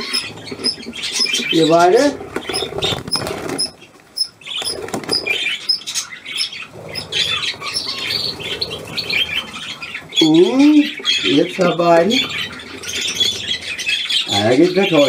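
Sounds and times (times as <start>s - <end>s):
budgerigars chirping: 0.0s - 15.0s
wings fluttering: 0.0s - 15.0s.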